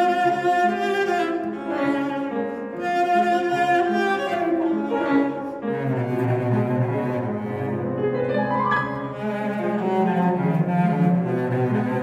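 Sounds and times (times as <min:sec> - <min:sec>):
cello bowed low notes: 0:00.0 - 0:12.0
piano accompaniment: 0:00.0 - 0:12.0.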